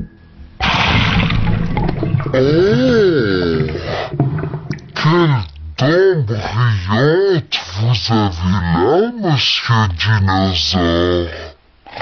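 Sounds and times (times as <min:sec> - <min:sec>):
cartoon water gushing and gurgling: 0:00.6 - 0:05.5.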